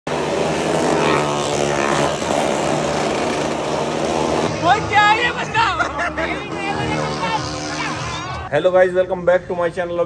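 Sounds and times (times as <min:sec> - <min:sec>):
motorcycle engines droning: 0:00.1 - 0:10.0.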